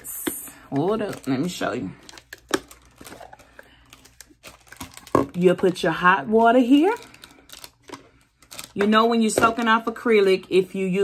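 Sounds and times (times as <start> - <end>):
plastic bag crinkling: 0.2 - 9.7.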